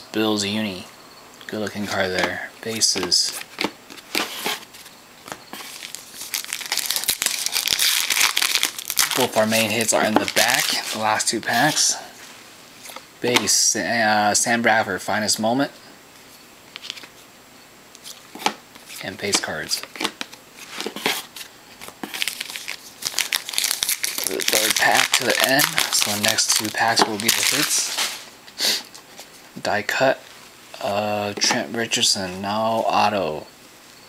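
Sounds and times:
foil wrapper crinkling and tearing: 0:05.5 - 0:12.0, 0:19.7 - 0:28.3.

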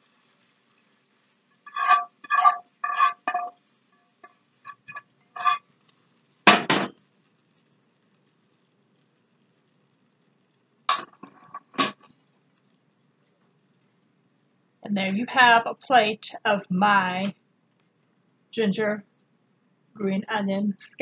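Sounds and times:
metal utensil scraping skillet: 0:01.6 - 0:03.6, 0:04.2 - 0:05.9, 0:10.9 - 0:12.1
pan clanking on stovetop: 0:06.5 - 0:07.0.

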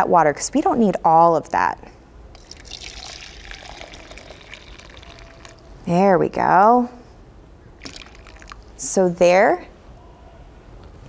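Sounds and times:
hot water pouring into plastic jug: 0:02.4 - 0:05.7, 0:07.8 - 0:08.7.

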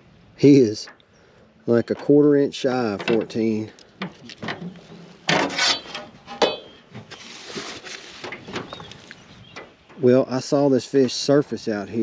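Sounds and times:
scraping in aluminum boat: 0:02.8 - 0:09.8.

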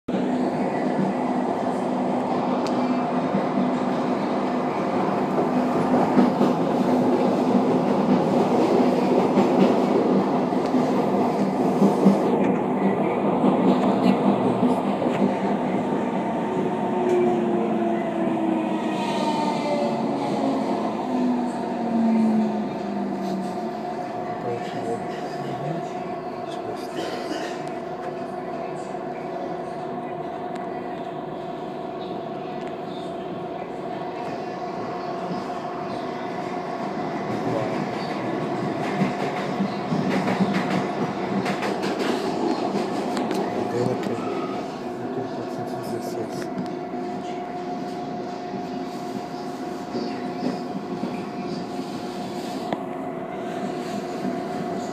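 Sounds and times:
train running with constant whine: 0:00.1 - 0:54.9
wheels clicking and rattling on rails: 0:02.1 - 0:24.0, 0:36.9 - 0:44.3.

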